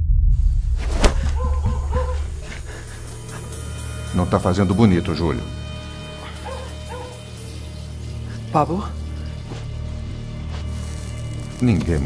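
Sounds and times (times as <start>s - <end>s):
low steady music: 0.1s - 12.0s
dog whimpering: 1.4s - 2.3s.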